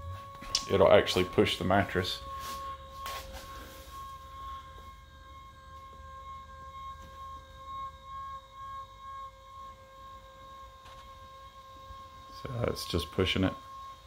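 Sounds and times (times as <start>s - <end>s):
electric motor whining: 0.0s - 14.0s.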